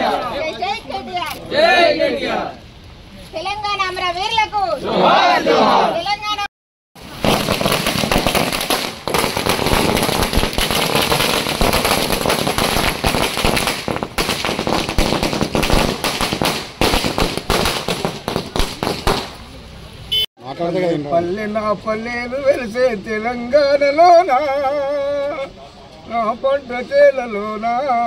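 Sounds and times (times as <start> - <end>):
firecrackers cracking and banging: 7.0 - 19.5.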